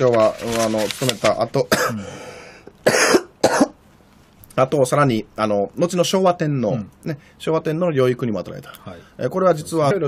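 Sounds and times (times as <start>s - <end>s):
man coughing: 1.7s - 2.1s, 2.8s - 3.8s.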